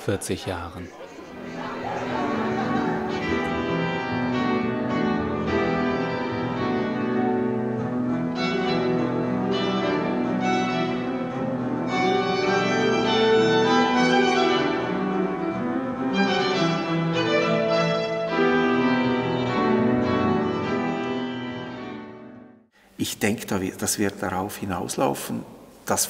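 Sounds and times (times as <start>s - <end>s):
piano: 1.0s - 22.7s
bowed strings sustained chords: 1.4s - 22.5s.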